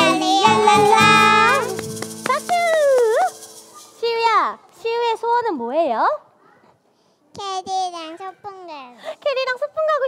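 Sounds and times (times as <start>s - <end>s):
children and woman singing: 0.0s - 3.2s
keyboard accompaniment: 0.0s - 4.0s.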